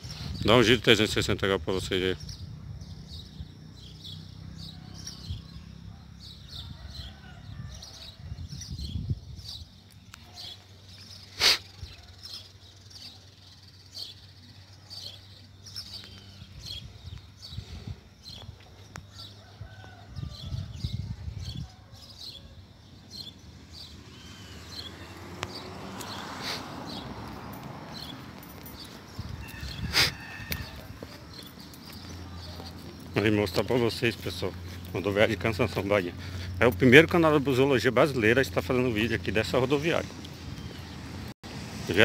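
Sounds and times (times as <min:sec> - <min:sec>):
small birds chirping: 0:00.0 - 0:41.3.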